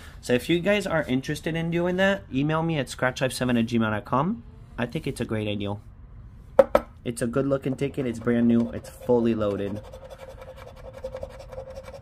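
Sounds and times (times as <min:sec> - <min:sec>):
faint steady hum: 0:00.0 - 0:12.0
scratching lottery ticket: 0:08.9 - 0:12.0.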